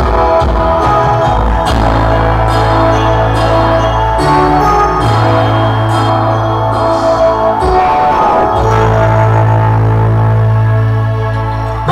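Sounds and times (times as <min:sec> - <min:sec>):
low held musical note: 0:05.7 - 0:11.0.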